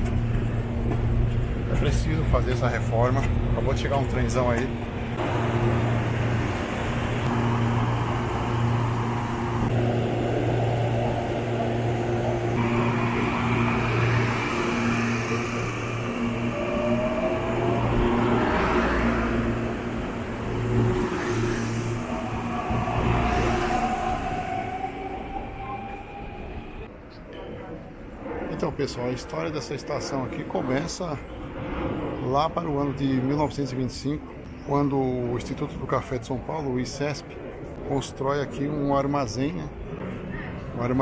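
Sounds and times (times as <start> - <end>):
train electrical hum: 0.0 - 26.9
train whine rising in pitch: 4.0 - 26.9.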